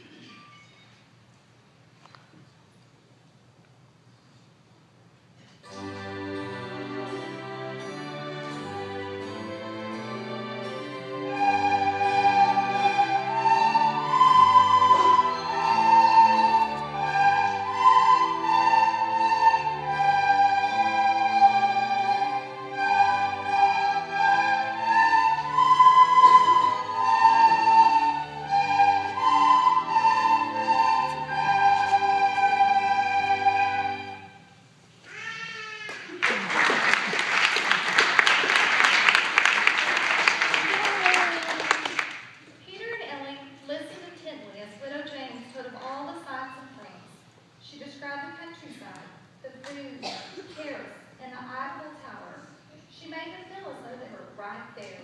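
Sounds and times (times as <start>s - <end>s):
recorder ensemble melody: 5.6s - 34.6s
audience applauding: 35.9s - 42.4s.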